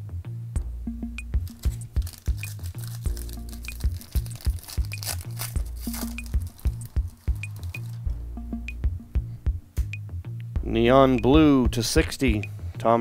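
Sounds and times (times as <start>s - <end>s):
electronic music: 0.6s - 10.0s
foil wrapper crinkling: 1.4s - 8.0s.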